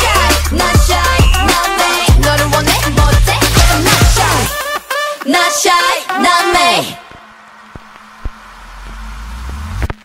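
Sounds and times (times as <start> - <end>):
electronic riser hissing swell: 7.4 - 10.0
deep rumble: 7.8 - 10.0.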